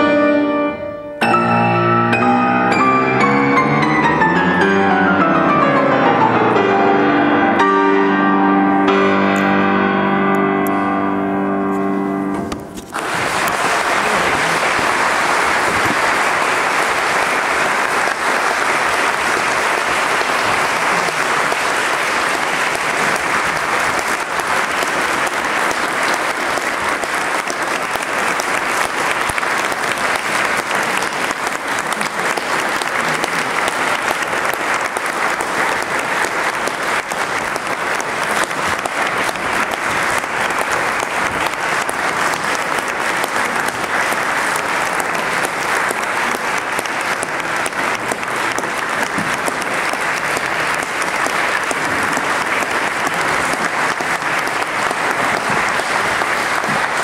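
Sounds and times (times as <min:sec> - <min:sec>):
audience applauding: 0:12.8 - 0:57.0.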